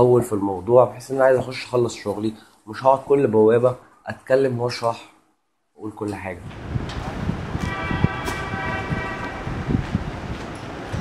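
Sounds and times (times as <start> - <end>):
steady horn tone: 7.4 - 10.3.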